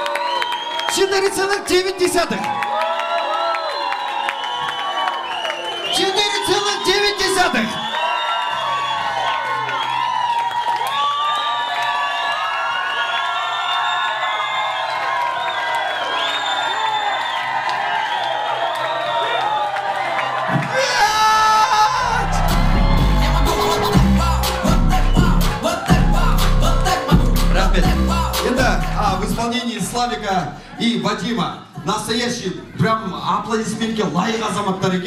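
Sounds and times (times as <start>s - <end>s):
crowd cheering and whooping: 0.0s - 29.4s
dance music with heavy bass: 22.0s - 30.6s
music: 22.0s - 35.0s.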